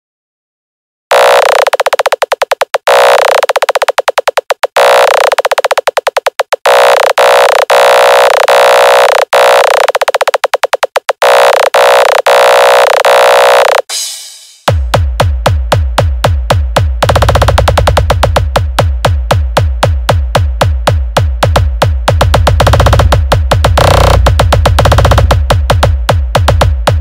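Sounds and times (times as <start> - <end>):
stuttering buzzy synthesizer tone: 1.1 - 13.9, 20.4 - 27.0.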